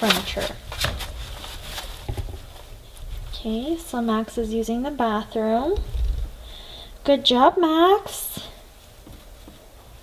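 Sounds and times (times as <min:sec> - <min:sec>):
puppy paws rustling in wood shavings: 0:00.0 - 0:05.2.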